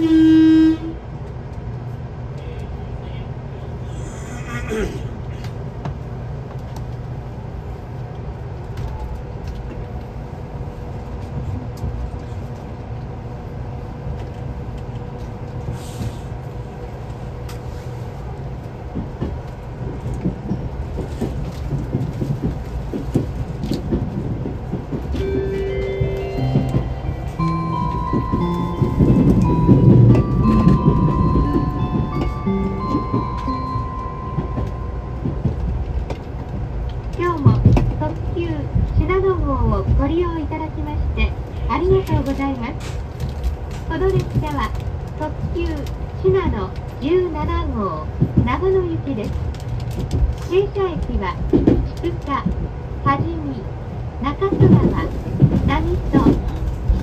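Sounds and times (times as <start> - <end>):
electric train rumble and hum: 0.0 - 57.0.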